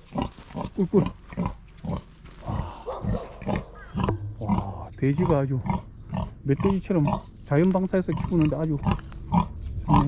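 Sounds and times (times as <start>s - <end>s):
pig grunting: 0.1s - 7.3s, 8.0s - 10.0s.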